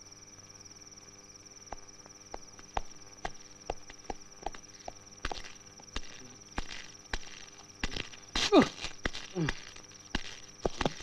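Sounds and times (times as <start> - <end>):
crickets chirping: 0.0 - 11.0
footsteps on outdoor ground: 1.7 - 11.0.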